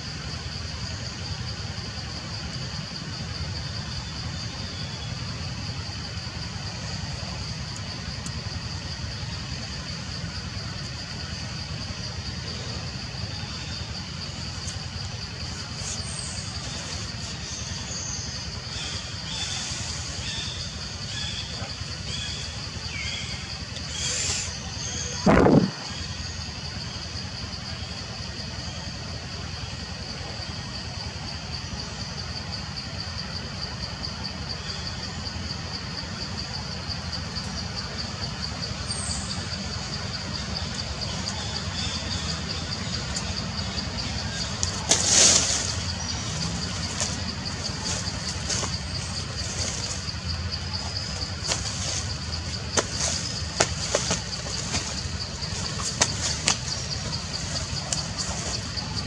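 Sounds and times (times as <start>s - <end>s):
insects buzzing in chorus: 0.0s - 59.0s
low rumble with hiss: 0.0s - 59.0s.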